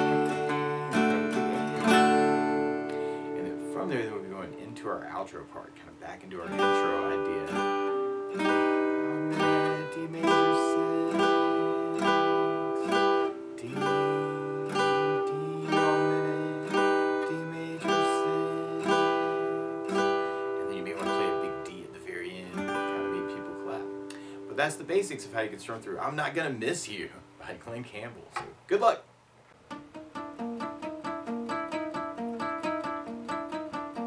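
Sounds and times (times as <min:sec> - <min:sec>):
acoustic guitar strumming: 0:00.0 - 0:28.2, 0:29.6 - 0:34.0.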